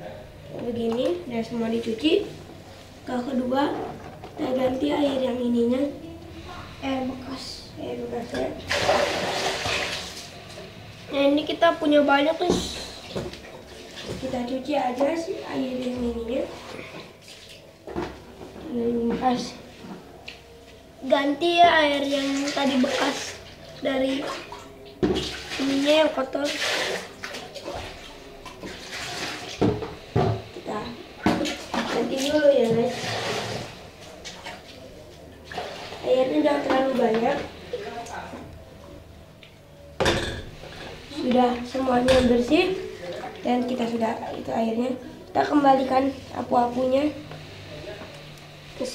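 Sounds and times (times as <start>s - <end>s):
child's voice: 3.1s - 8.6s, 11.1s - 13.0s, 14.2s - 17.0s, 18.6s - 19.7s, 21.0s - 24.5s, 25.6s - 26.6s, 32.0s - 33.0s, 43.4s - 47.2s.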